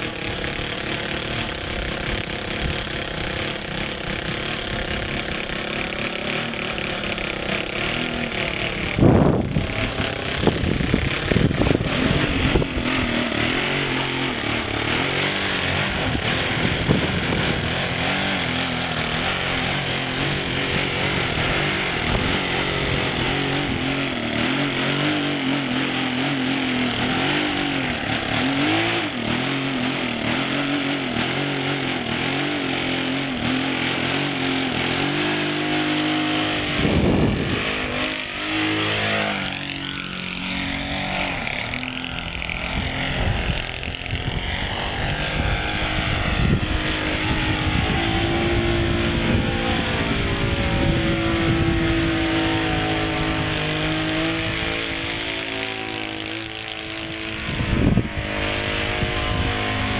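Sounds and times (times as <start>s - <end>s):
model plane engine running: 0.0s - 59.9s
wind buffeting microphone: 8.6s - 25.1s, 36.3s - 55.3s, 56.2s - 59.9s.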